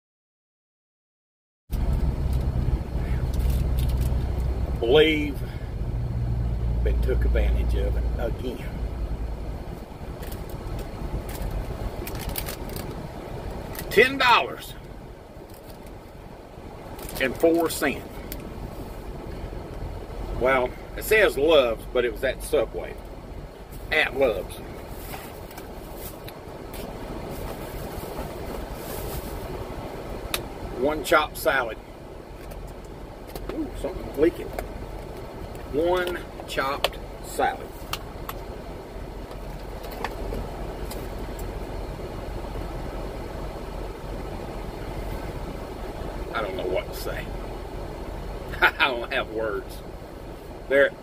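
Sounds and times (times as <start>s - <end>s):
truck engine idling: 1.8s - 50.7s.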